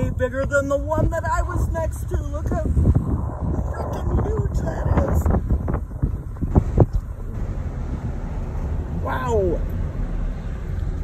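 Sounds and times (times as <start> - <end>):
wind buffeting microphone: 0.0 - 9.0
vehicle engine and road rumble: 0.0 - 11.0.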